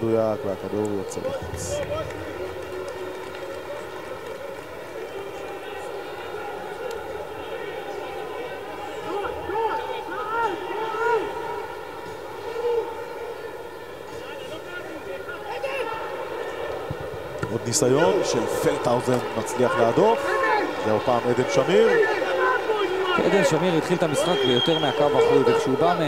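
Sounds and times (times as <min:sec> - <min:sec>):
footballers shouting: 0:00.6 - 0:26.0.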